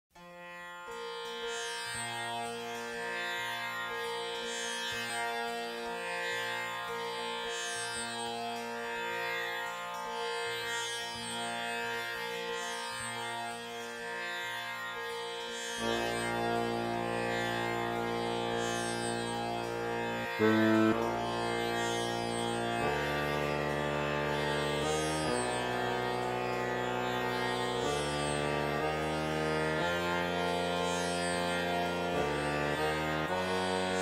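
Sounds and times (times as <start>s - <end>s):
tanpura drone: 0.1s - 34.0s
low sustained accompaniment: 14.9s - 34.0s.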